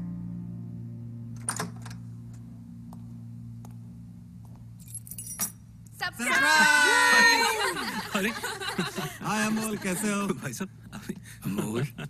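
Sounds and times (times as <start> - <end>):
faint low hum: 0.0 - 12.0
metallic jingling: 4.8 - 5.6.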